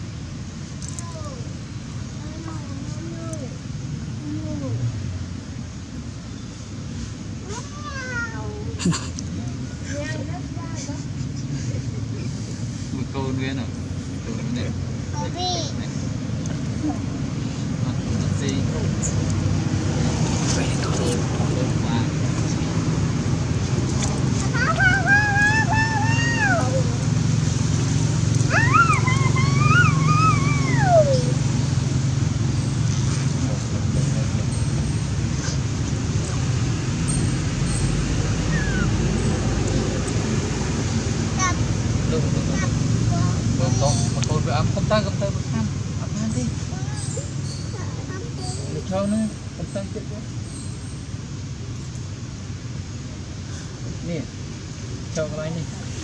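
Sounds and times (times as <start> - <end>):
macaque whining calls: 28.4 - 31.4, 38.4 - 39.0
faint squeaky calls: 37.1 - 39.0, 46.7 - 51.1.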